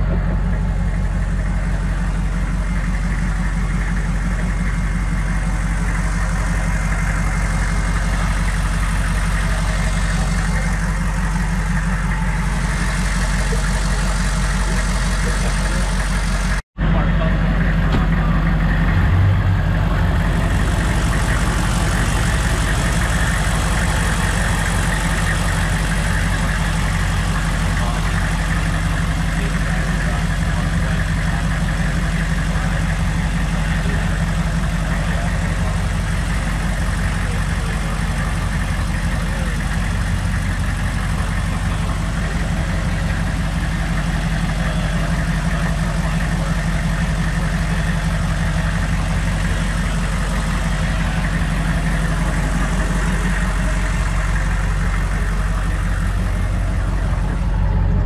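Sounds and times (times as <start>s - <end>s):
engine idling: 0.0s - 58.0s.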